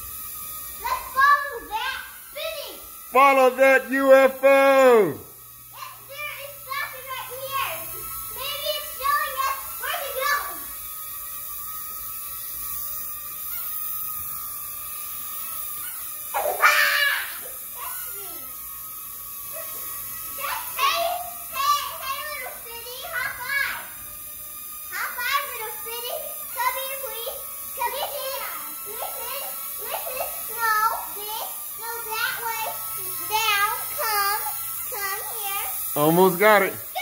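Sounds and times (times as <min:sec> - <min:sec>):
toy drone propellers whining: 0:00.0 - 0:37.0
children squealing and shouting: 0:00.8 - 0:02.9, 0:16.3 - 0:18.6, 0:19.5 - 0:24.0.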